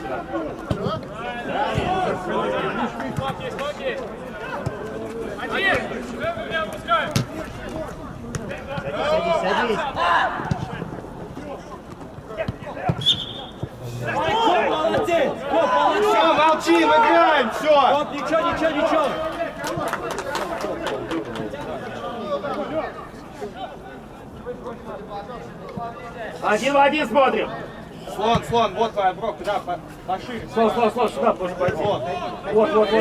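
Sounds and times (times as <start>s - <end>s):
players calling and shouting: 0.0s - 33.0s.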